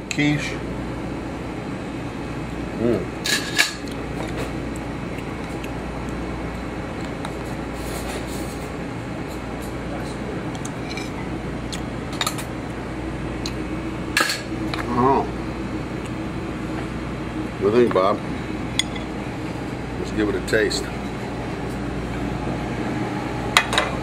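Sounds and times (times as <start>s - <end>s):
kitchen hum: 0.0s - 24.0s.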